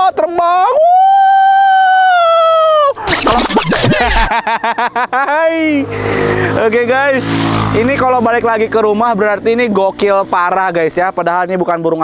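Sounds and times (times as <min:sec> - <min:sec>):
bursts of laughter: 0:02.6 - 0:06.6.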